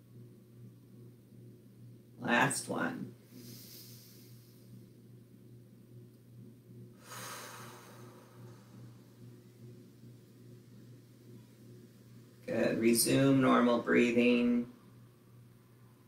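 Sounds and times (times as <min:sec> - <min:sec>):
steady low hum: 0:00.0 - 0:16.0
person inhaling through nose: 0:03.3 - 0:04.6, 0:07.0 - 0:08.8
person exhaling through mouth: 0:07.0 - 0:08.8.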